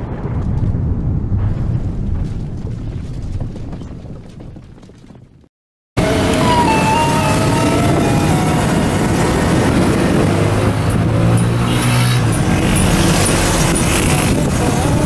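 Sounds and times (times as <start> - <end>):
road traffic: 6.0 - 15.0
vehicle engine drone: 6.0 - 15.0.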